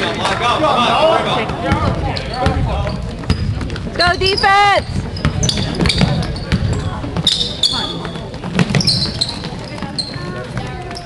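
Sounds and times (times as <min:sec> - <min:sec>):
basketball bouncing: 0:01.4 - 0:11.0
sneaker squeaks on floor: 0:02.1 - 0:11.0.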